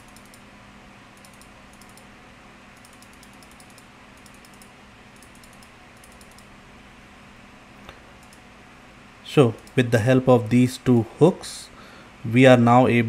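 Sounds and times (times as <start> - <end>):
faint computer clicking: 0.0 - 0.4, 1.2 - 2.1, 2.8 - 6.5, 7.8 - 8.5
low steady hum: 0.0 - 13.0.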